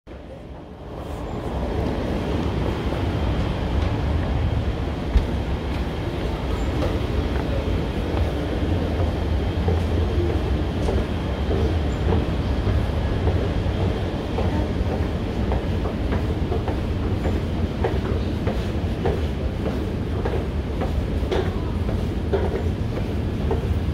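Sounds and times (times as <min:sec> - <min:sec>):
metro train rumbling: 0:00.1 - 0:23.9.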